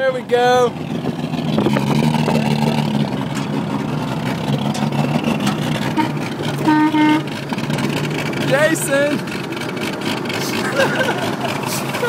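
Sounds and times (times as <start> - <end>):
truck engine drone with rattling: 0.0 - 12.0
flat-pitched horn toot: 5.9 - 7.3.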